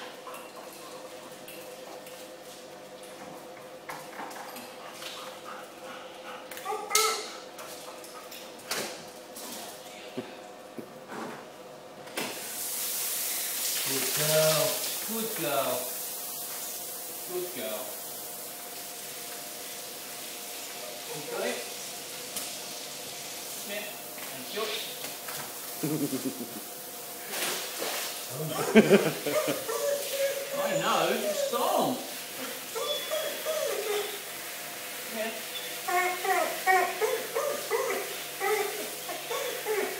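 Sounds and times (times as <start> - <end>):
shower hose spraying: 12.2 - 39.9
dog whining yips: 29.4 - 32.0, 32.7 - 34.2, 35.5 - 39.9.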